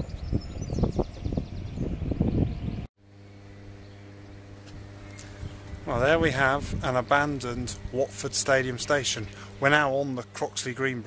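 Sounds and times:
wind buffeting microphone: 0.0s - 2.9s, 4.8s - 8.1s
transformer electrical hum: 0.0s - 11.0s.

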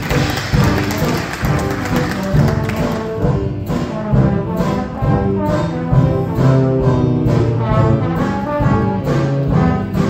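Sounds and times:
dance band playing: 0.0s - 10.0s.

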